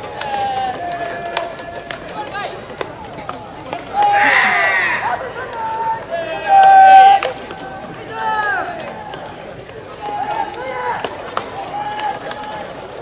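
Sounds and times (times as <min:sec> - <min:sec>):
players shouting: 0:00.0 - 0:13.0.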